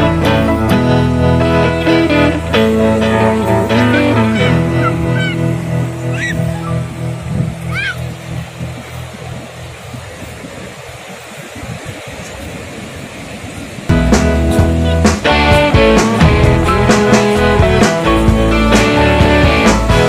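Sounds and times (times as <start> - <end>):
background guitar music: 0.0 - 10.1, 13.9 - 20.0
surf breaking on beach: 1.7 - 20.0
short high chirping calls: 3.7 - 7.0.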